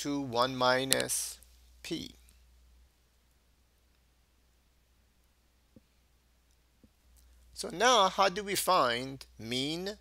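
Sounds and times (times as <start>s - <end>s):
faint low hum: 0.0s - 10.0s.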